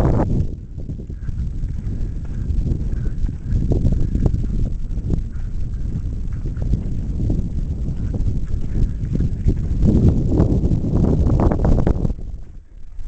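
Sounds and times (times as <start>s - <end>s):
low rumble: 0.0s - 13.0s
wind buffeting microphone: 0.0s - 13.0s.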